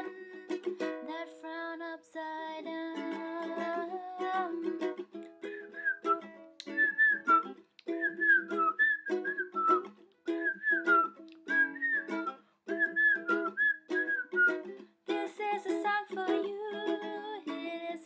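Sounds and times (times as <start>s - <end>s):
ukulele strummed chords: 0.0s - 18.0s
woman whistling a melody: 5.4s - 14.7s.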